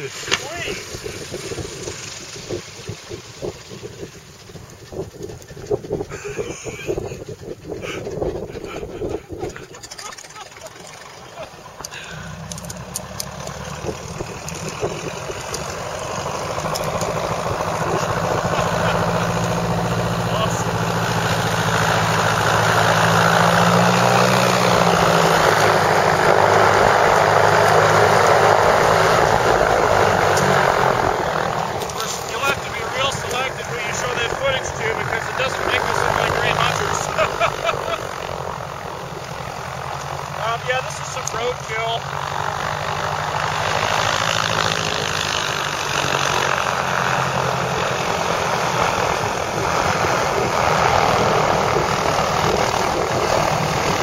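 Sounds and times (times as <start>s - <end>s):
voices: 0.0s - 0.9s, 17.6s - 21.0s, 31.8s - 38.3s, 40.4s - 42.0s
small plane flying overhead: 0.0s - 54.0s.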